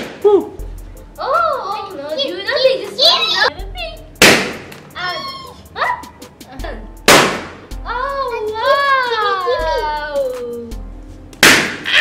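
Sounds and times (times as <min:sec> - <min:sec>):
balloons bursting: 0:04.2 - 0:04.8, 0:07.0 - 0:07.7, 0:11.4 - 0:12.0
child's drawn-out vocal cry: 0:05.0 - 0:06.0.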